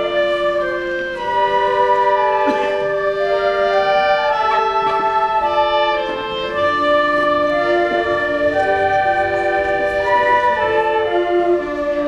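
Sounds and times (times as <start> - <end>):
concert band playing held notes: 0.0 - 12.0.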